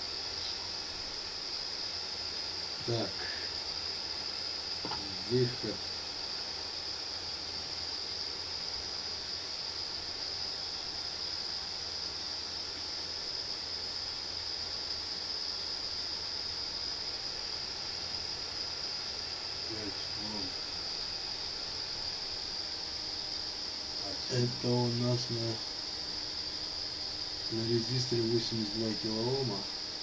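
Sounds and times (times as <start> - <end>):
faint low hum: 0.0 - 30.0
steady high-pitched whine: 0.0 - 30.0.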